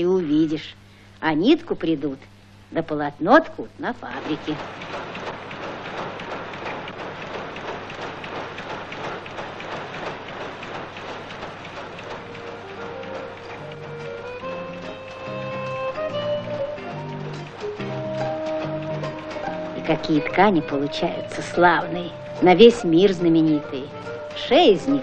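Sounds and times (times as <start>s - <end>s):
power looms clattering: 4.0s - 25.0s
music with held notes: 12.0s - 25.0s.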